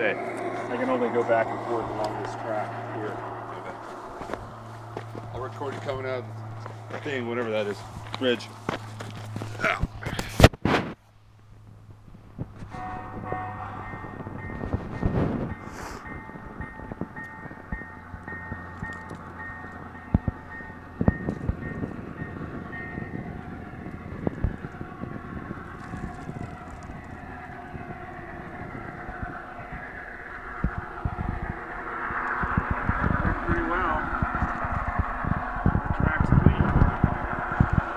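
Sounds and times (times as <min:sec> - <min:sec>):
model locomotive motor whine: 0:00.0 - 0:09.4, 0:12.5 - 0:37.9
crunching and clicks: 0:25.7 - 0:27.2.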